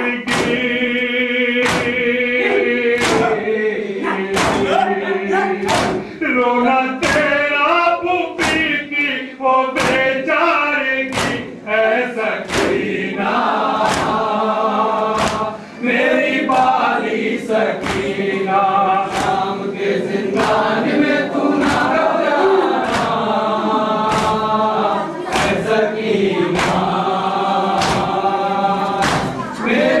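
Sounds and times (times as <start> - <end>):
group chanting a lament: 0.0 - 30.0
sharp rhythmic beat: 0.0 - 30.0.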